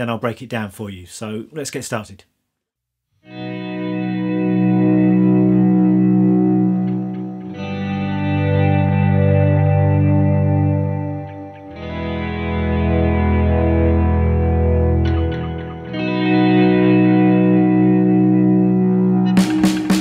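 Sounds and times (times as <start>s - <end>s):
electric guitar sustained chords: 3.2s - 20.0s.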